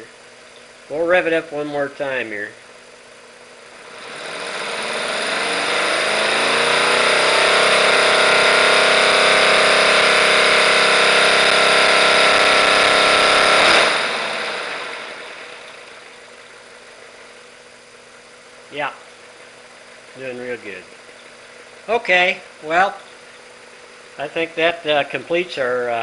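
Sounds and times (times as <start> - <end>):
model engine revving: 3.6 - 17.4, 20.1 - 26.0.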